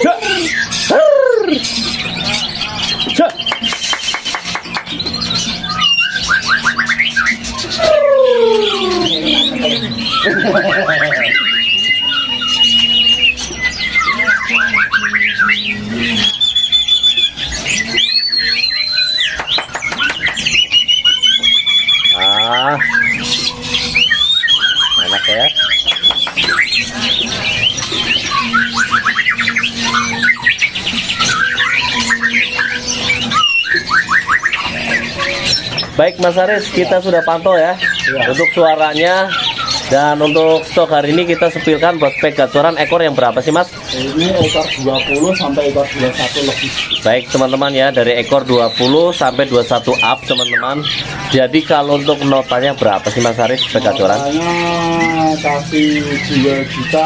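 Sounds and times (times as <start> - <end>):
songbird singing whistles and trills: 0.0 - 57.0.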